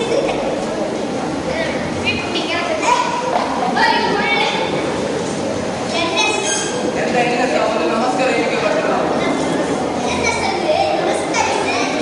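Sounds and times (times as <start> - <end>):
crowd murmur: 0.0 - 12.0
boys speaking: 1.3 - 12.0.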